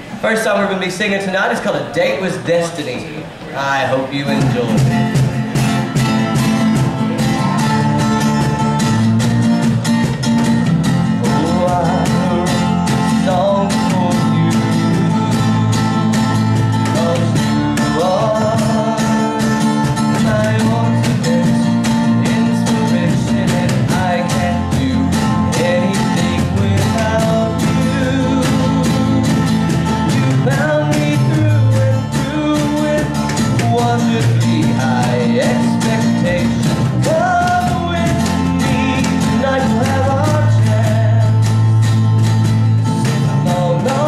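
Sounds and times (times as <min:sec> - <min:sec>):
strummed acoustic guitar: 0:00.0 - 0:44.0
man singing: 0:03.6 - 0:05.2, 0:06.0 - 0:09.6, 0:11.0 - 0:44.0
cajon beat: 0:04.2 - 0:44.0
bass guitar: 0:04.3 - 0:44.0.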